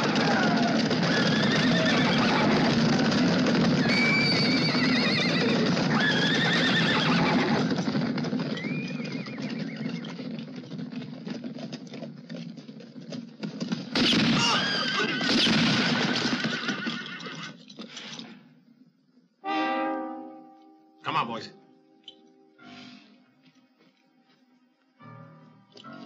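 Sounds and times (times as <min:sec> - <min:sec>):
horses whinnying: 0:00.0 - 0:11.8, 0:14.0 - 0:18.2
hoof clicks: 0:00.0 - 0:14.0
horses galloping hoofbeats: 0:00.0 - 0:18.2.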